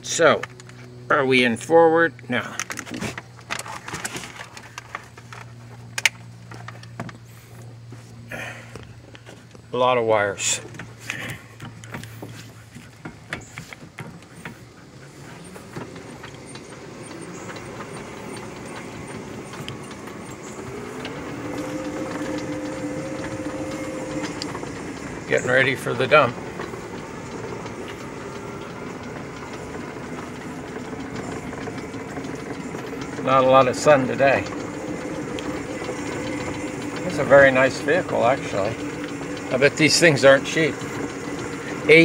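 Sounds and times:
rattling vehicle chassis on dirt: 0.0 - 42.0
two-tone electric motor whine: 13.0 - 42.0.

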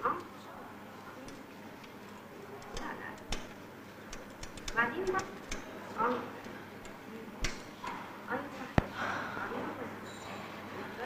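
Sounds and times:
background murmur: 0.0 - 11.0
payphone dialing clicks: 1.2 - 7.9.

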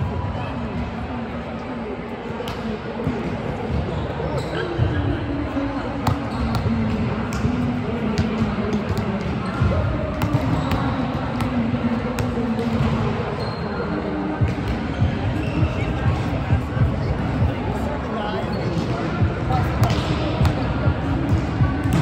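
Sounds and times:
murmur of players' voices: 0.0 - 22.0
volleyballs hit and bouncing: 6.0 - 13.4, 18.7 - 22.0.

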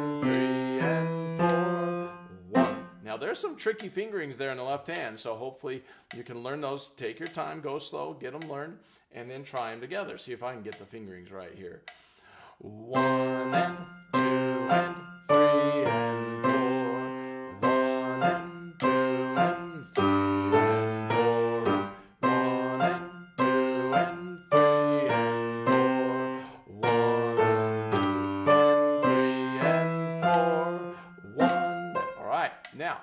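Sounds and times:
slow grand piano melody: 0.0 - 3.0, 13.0 - 32.3.

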